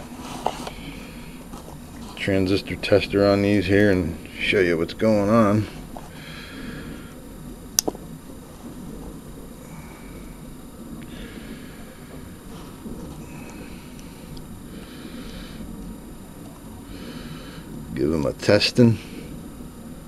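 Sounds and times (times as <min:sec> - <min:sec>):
soft rustling: 0:00.0 - 0:02.7
low bench hum: 0:00.0 - 0:20.0.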